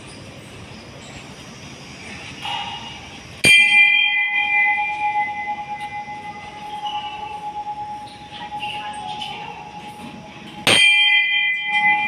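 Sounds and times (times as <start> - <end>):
metal bell ringing: 3.4 - 12.0.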